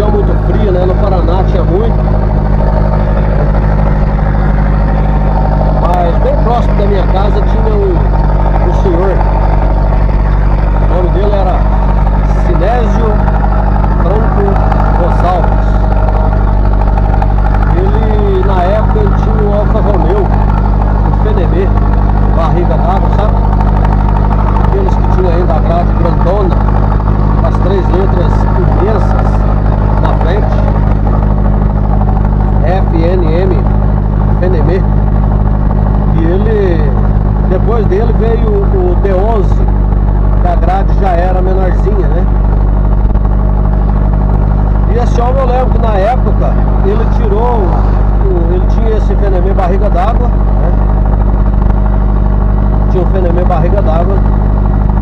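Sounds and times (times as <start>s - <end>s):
man talking: 0.0s - 2.0s, 5.8s - 9.2s, 10.9s - 13.2s, 14.0s - 15.8s, 17.7s - 20.4s, 21.1s - 21.7s, 22.4s - 23.3s, 24.7s - 26.6s, 27.4s - 29.4s, 30.0s - 30.6s, 32.6s - 33.6s, 34.4s - 34.8s, 36.1s - 39.7s, 40.4s - 42.3s, 44.9s - 50.8s, 52.9s - 54.2s
vehicle engine droning: 0.0s - 55.0s.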